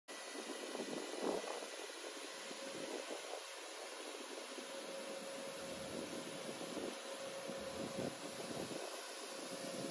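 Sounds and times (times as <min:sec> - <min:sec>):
faint motor and fan tone: 0:00.1 - 0:09.9
road sweeper hissing: 0:00.1 - 0:09.9.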